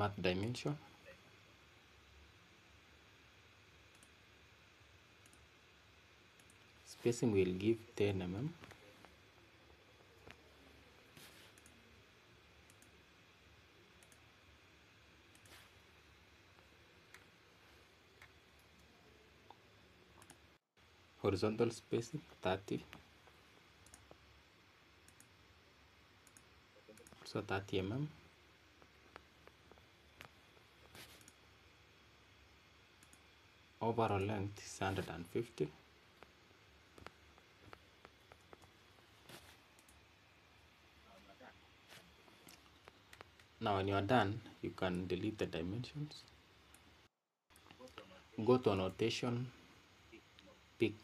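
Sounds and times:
computer mouse clicks: 3.9 - 4.2, 6.4 - 6.6, 11.2 - 11.8, 12.7 - 13.0, 14.0 - 14.2, 15.3 - 15.7, 20.2 - 20.4, 23.8 - 24.2, 25.0 - 25.3, 26.2 - 27.3, 29.1 - 31.4
faint computer mouse clicks: 23.8 - 24.2.

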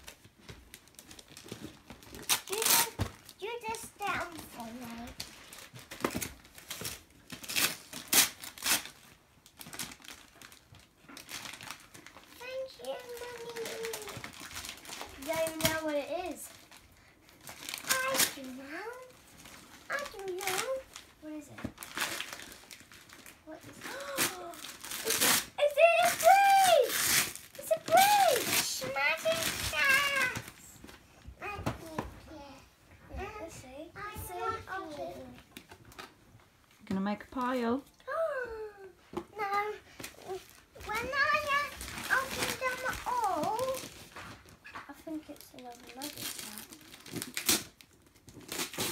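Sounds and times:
wrapping paper crinkling and tearing: 0.0 - 30.9, 39.5 - 48.9.

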